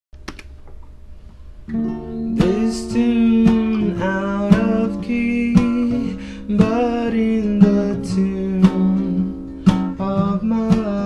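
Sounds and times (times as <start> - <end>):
low steady hum: 0.2 - 11.0
acoustic guitar chord strummed: 1.7 - 11.0.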